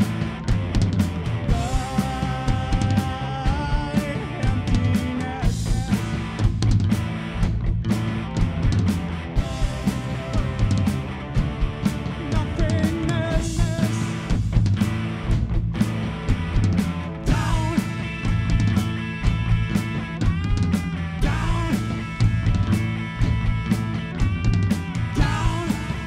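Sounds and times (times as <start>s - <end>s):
drums striking: 0.0s - 26.0s
rock band playing live: 0.0s - 26.0s.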